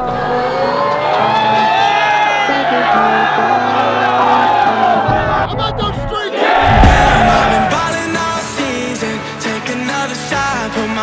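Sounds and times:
crowd singing together: 0:02.6 - 0:05.1, 0:06.3 - 0:09.8.

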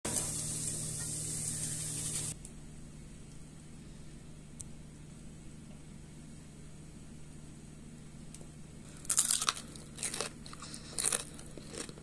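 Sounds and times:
hot oil sizzling: 0:00.1 - 0:02.4.

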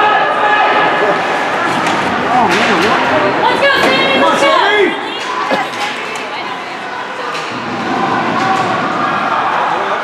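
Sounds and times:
spectators and players calling out: 0:00.0 - 0:10.0.

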